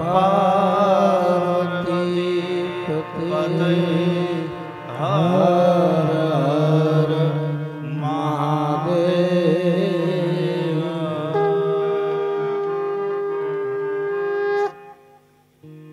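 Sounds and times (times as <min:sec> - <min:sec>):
man chanting: 0:00.0 - 0:14.2.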